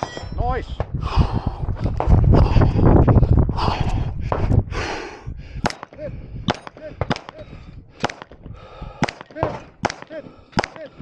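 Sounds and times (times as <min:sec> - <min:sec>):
bullet ringing steel target: 0:00.0 - 0:00.5
pistol shots: 0:05.6 - 0:07.4, 0:08.0 - 0:08.4, 0:09.0 - 0:10.9.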